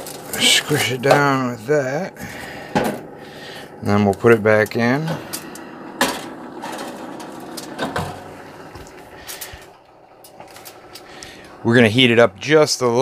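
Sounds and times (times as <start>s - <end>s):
low steady hum: 0.0s - 13.0s
oven glass door closing: 5.0s - 8.9s.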